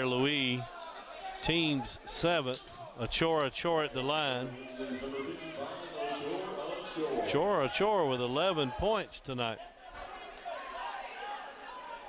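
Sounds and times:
murmur of echoing voices: 0.0 - 12.0.

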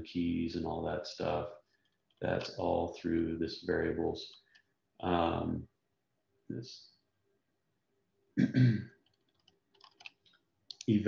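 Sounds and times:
man clearing throat: 8.4 - 8.8.

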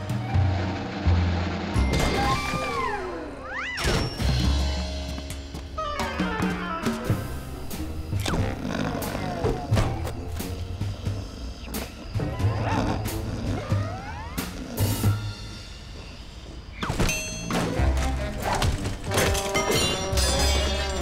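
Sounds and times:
cartoon background music: 0.0 - 15.8, 16.8 - 21.0
cartoon bear growling: 8.2 - 11.6, 12.2 - 15.3.

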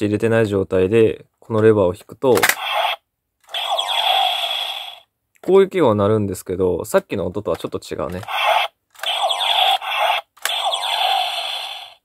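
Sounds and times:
electronic toy zapping sounds: 2.4 - 5.0, 8.2 - 12.0.

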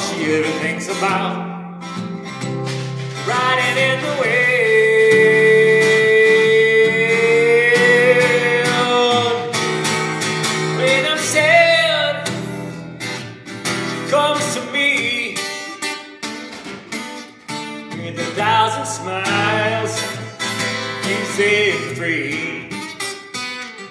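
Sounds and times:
man singing: 0.0 - 1.8, 2.8 - 12.7, 13.8 - 16.1, 17.5 - 23.2
strummed acoustic guitar: 0.0 - 23.9.

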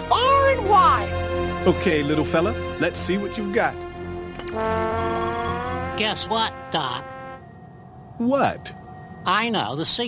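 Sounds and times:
held brass-like note: 3.7 - 7.6.

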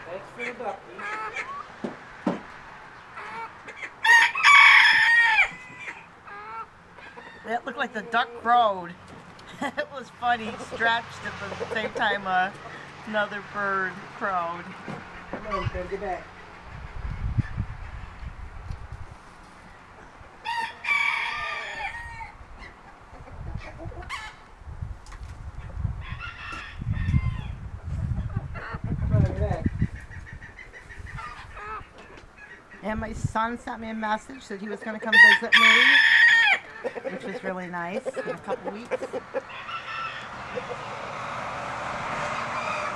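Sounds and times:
hens clucking: 0.0 - 41.3
rooster crowing: 4.0 - 6.1, 20.4 - 22.4, 35.2 - 36.7, 39.4 - 40.8, 42.2 - 42.9.

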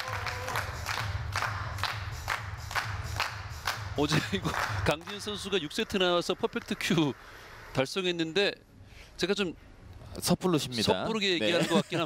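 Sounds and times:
small group clapping: 0.0 - 7.2
music with steady beat: 0.1 - 5.5.

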